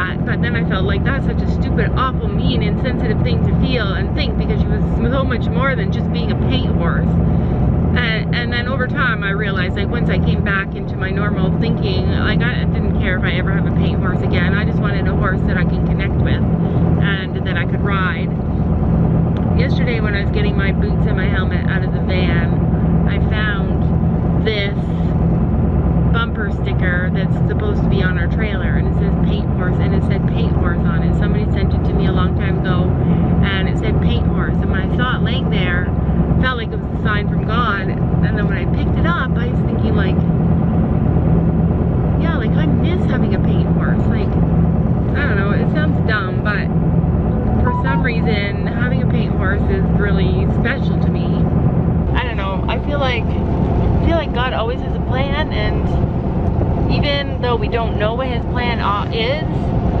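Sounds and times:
woman talking: 0.0s - 18.4s, 19.4s - 25.2s, 26.1s - 40.3s, 42.2s - 44.4s, 45.1s - 46.7s, 47.6s - 51.5s, 54.0s - 56.0s, 56.9s - 59.7s
car engine hum and road noise: 0.0s - 60.0s.

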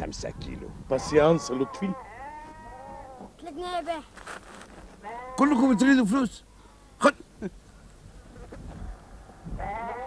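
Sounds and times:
sheep bleating: 1.0s - 3.3s, 5.0s - 6.1s, 9.6s - 10.0s.

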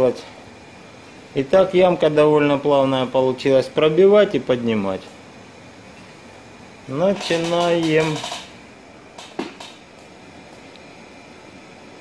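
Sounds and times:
steady fan-like hiss: 0.0s - 12.0s.

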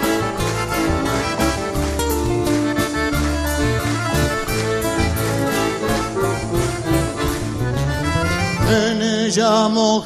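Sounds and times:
piano accordion melody: 0.0s - 9.9s
band with bass line: 0.0s - 10.0s.

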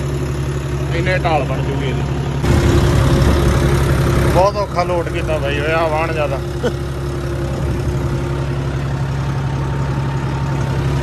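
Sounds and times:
tractor diesel engine under load: 0.0s - 11.0s.

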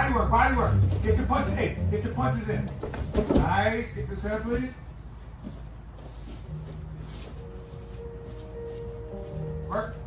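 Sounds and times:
faint background music: 0.0s - 10.0s
bodies scuffling on gym mats: 2.5s - 10.0s.

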